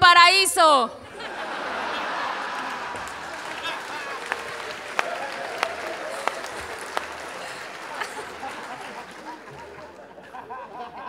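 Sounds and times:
audience applauding: 1.2s - 10.2s.

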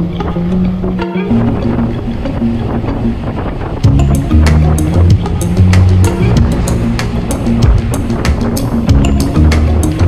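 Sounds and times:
background music: 0.0s - 10.0s
wind buffeting microphone: 0.0s - 10.0s.

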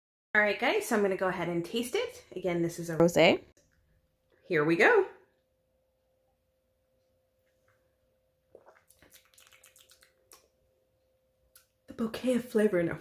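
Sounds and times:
faint steady hum: 3.6s - 13.0s
lip and tongue clicks: 8.5s - 10.6s, 11.5s - 11.7s.

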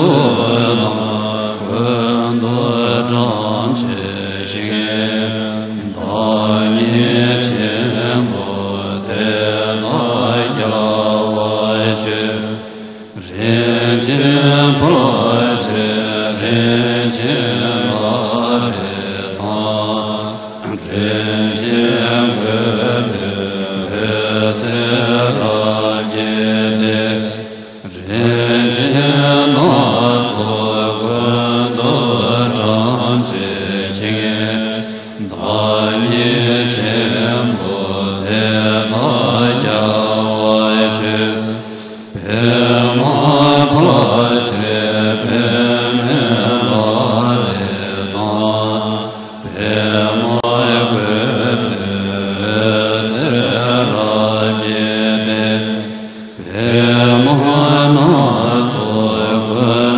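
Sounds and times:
slow buddhist chant: 0.0s - 59.9s.

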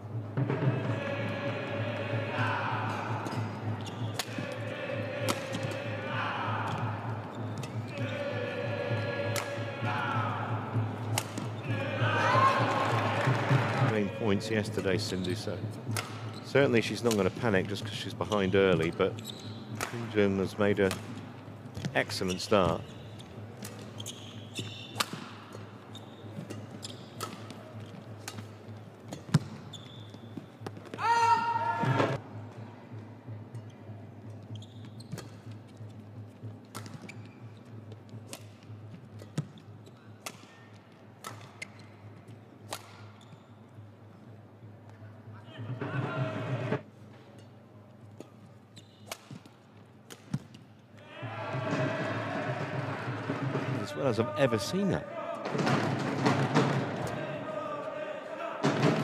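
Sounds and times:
shoes squeaking on court: 3.8s - 4.2s, 18.3s - 19.8s, 21.8s - 31.0s, 34.3s - 36.0s, 36.8s - 38.2s, 43.0s - 43.6s, 48.2s - 49.6s
rackets hitting shuttlecock: 4.2s - 4.5s, 9.3s - 9.6s, 11.1s - 11.5s, 15.9s - 16.3s, 19.7s - 20.1s, 24.6s - 25.6s, 26.4s - 29.6s, 36.7s - 37.1s.

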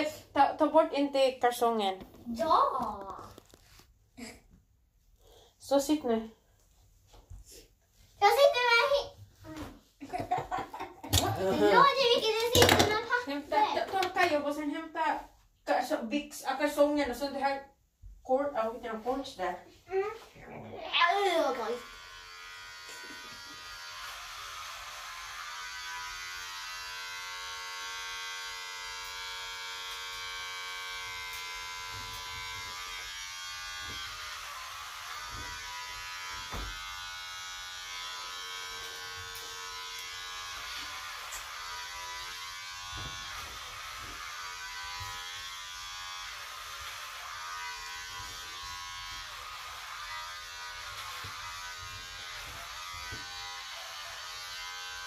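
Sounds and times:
electric hair clippers buzzing: 10.1s - 14.3s, 20.9s - 55.0s.

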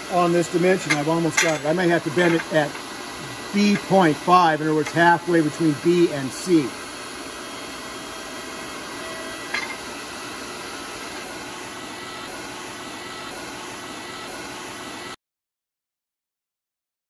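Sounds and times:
hydraulic bender motor running: 0.0s - 15.2s.

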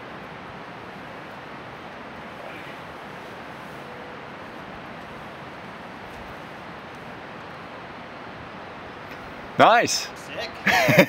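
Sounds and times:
outdoor rushing hiss: 0.0s - 11.0s.

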